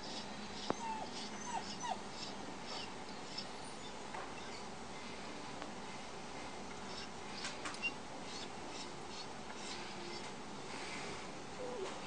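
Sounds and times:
dog whining: 0:00.0 - 0:04.7, 0:06.9 - 0:10.3, 0:11.6 - 0:12.0.

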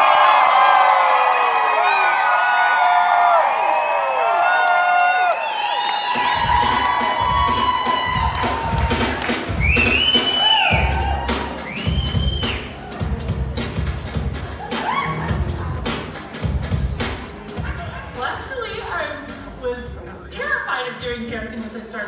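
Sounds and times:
audience cheering and whooping: 0:00.0 - 0:18.2
music with a beat: 0:06.1 - 0:18.2.

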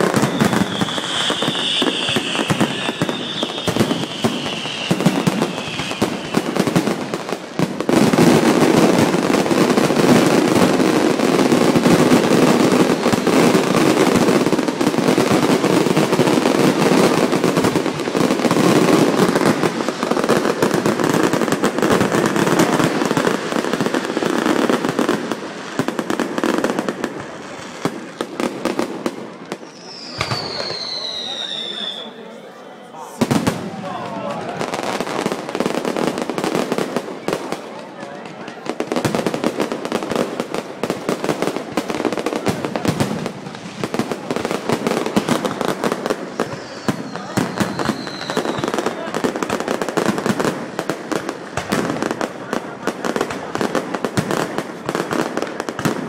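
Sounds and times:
high firework whistle: 0:00.0 - 0:06.8, 0:29.5 - 0:33.5, 0:46.3 - 0:49.0
fireworks bangs and crackles: 0:00.0 - 0:32.1, 0:32.9 - 0:56.0.

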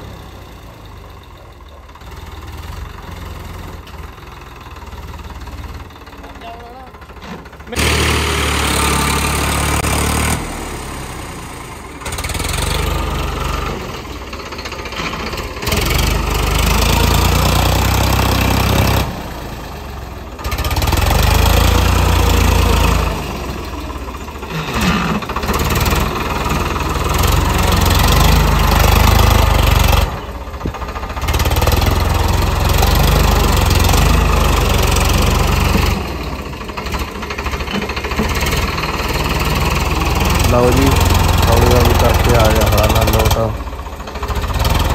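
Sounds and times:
tractor diesel engine under load: 0:00.0 - 0:44.9.

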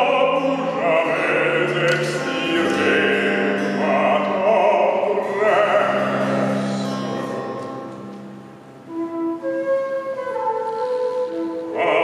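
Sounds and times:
ensemble chord: 0:00.0 - 0:10.3
flute playing held notes: 0:08.8 - 0:12.0.

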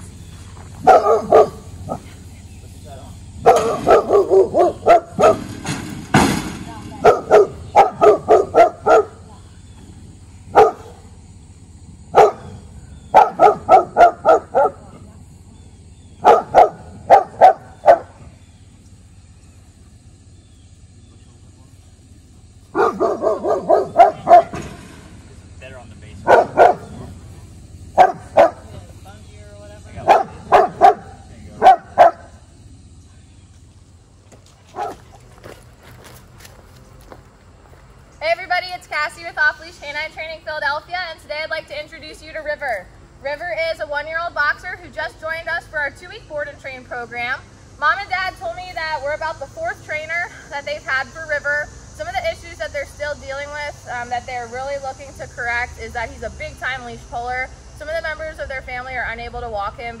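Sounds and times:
dog barking: 0:00.8 - 0:02.1, 0:03.4 - 0:05.5, 0:07.0 - 0:09.3, 0:10.5 - 0:11.0, 0:12.1 - 0:15.0, 0:16.2 - 0:18.2, 0:22.7 - 0:24.6, 0:26.2 - 0:27.1, 0:28.0 - 0:28.7, 0:30.0 - 0:32.4, 0:34.7 - 0:35.0.

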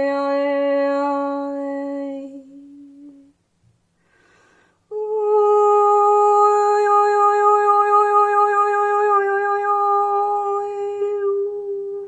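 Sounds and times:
woman humming a steady tone: 0:00.0 - 0:03.4, 0:04.9 - 0:12.0.

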